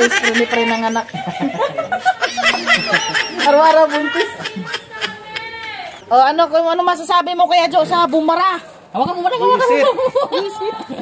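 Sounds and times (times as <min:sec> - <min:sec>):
people laughing: 0:00.0 - 0:06.0, 0:09.4 - 0:11.0.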